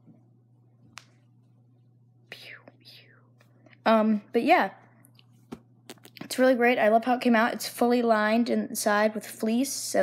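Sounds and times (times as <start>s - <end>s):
steady low hum: 0.0s - 10.0s
person whispering softly: 2.3s - 3.5s.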